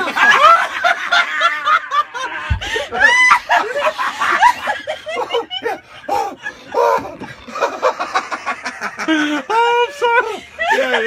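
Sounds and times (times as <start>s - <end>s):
people laughing: 0.0s - 11.0s
low thump: 2.5s - 2.9s.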